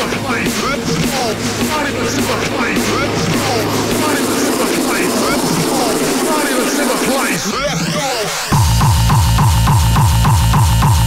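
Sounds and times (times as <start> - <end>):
distorted industrial hardcore music: 0.0 - 11.0.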